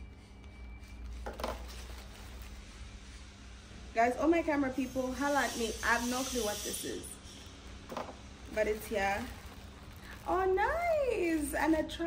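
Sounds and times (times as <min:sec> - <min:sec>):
plastic packaging rustling: 0:00.9 - 0:02.8, 0:07.9 - 0:12.0.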